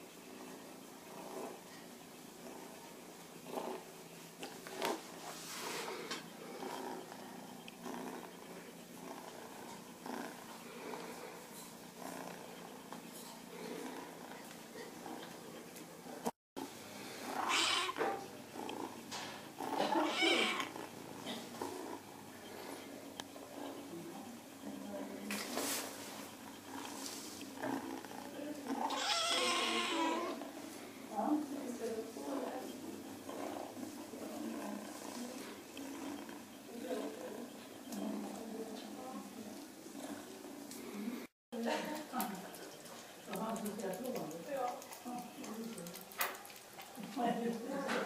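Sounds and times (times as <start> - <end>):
kitten purring: 0.4 - 16.3, 17.2 - 41.3
kitten crying: 17.4 - 18.0, 19.8 - 20.7, 28.9 - 30.4.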